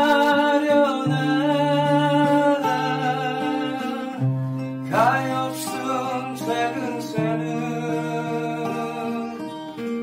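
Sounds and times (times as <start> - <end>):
acoustic guitar playing slow song: 0.0 - 10.0.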